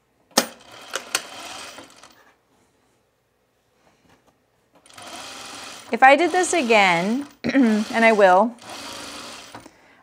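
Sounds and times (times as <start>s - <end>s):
sewing machine stitching: 0.4s - 2.2s, 4.8s - 9.7s.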